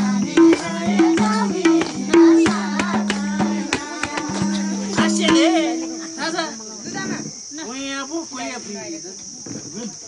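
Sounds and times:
insect chirring: 0:00.0 - 0:10.0.

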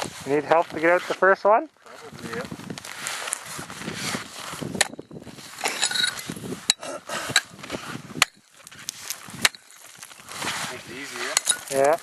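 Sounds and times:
tool scraping ice: 0:02.8 - 0:12.0.

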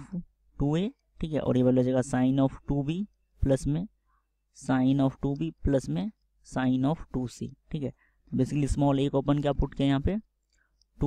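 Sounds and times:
man speaking: 0:00.0 - 0:10.4.

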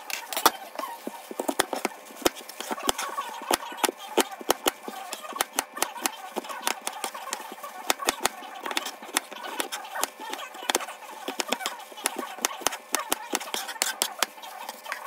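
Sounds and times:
knife chopping on cutting board: 0:00.4 - 0:15.0.

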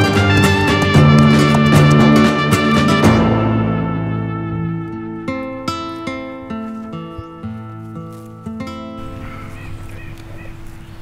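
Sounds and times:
plucked acoustic guitar notes: 0:00.0 - 0:10.3
faint outdoor rustle: 0:04.9 - 0:11.0.

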